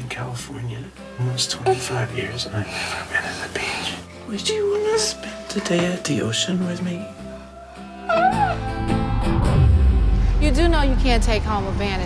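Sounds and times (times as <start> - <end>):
soft trailer music: 0.0 - 12.0
baby squealing: 7.5 - 9.0.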